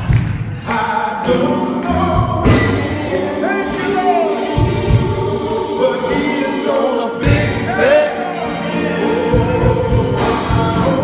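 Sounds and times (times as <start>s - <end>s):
men's choir singing gospel: 0.0s - 11.0s.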